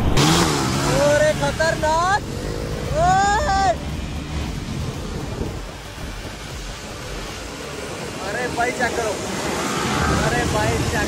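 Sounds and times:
motorcycle engines rumbling: 0:00.0 - 0:11.0
wind buffeting microphone: 0:04.0 - 0:08.2.

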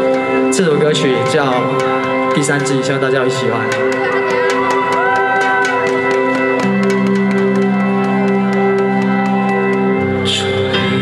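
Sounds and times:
electric guitar: 0:00.0 - 0:11.0
ticking beat: 0:00.2 - 0:10.6.

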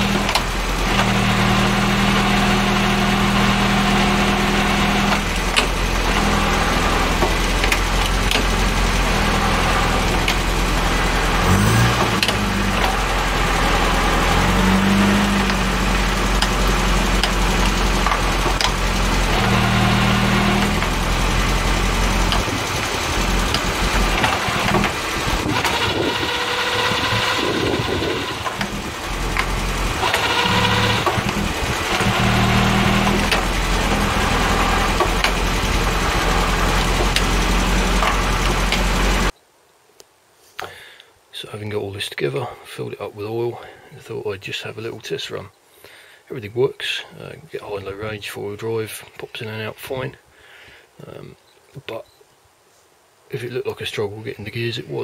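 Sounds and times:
gears being engaged: 0:00.0 - 0:39.3
car engine running: 0:00.0 - 0:39.4.

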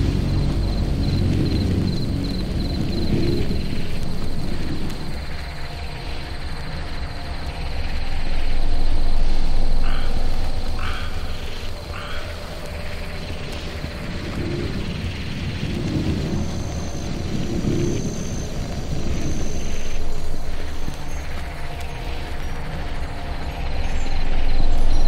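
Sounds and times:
frogs croaking: 0:00.0 - 0:25.0
low steady drone: 0:00.0 - 0:25.0.

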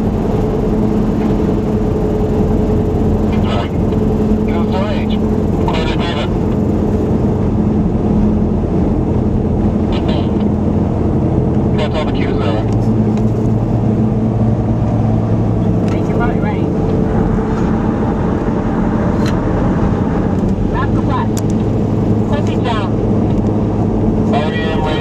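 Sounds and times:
car road and engine noise: 0:00.0 - 0:25.0
voices: 0:03.2 - 0:06.7, 0:09.9 - 0:10.5, 0:11.6 - 0:12.8, 0:15.6 - 0:16.8, 0:20.7 - 0:21.5, 0:22.2 - 0:23.0, 0:24.2 - 0:25.0.

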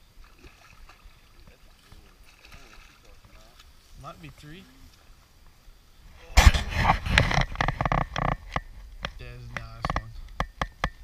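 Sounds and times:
fish splashing in water: 0:00.0 - 0:03.6.

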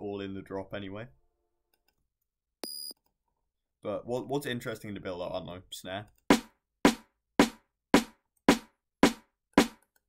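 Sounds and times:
electronic snare hits: 0:06.3 - 0:09.8.

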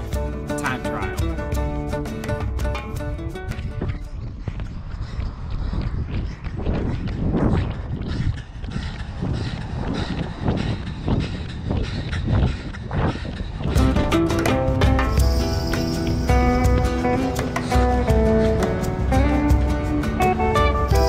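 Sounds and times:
acoustic guitar music: 0:00.0 - 0:03.8, 0:13.8 - 0:21.0
running footsteps on pavement: 0:00.0 - 0:21.0.

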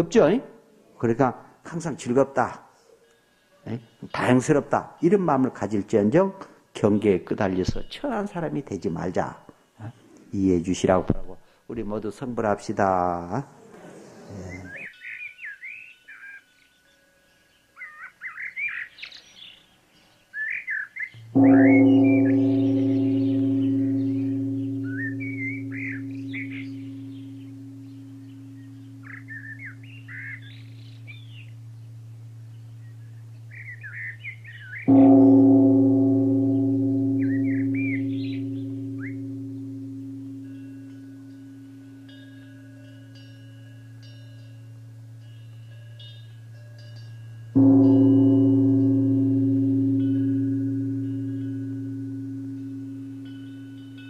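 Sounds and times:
small birds chirping: 0:14.3 - 0:54.0
deep-toned bell ringing: 0:21.2 - 0:54.0.

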